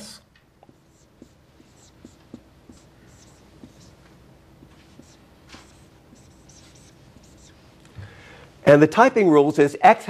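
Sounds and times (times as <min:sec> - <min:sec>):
marker scratching on whiteboard: 0:00.6 - 0:07.8.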